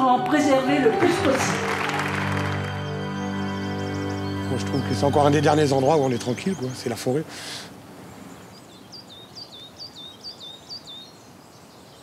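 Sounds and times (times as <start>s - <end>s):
steady outdoor hiss: 0.7s - 12.0s
songbird singing two-note phrase: 3.0s - 6.8s.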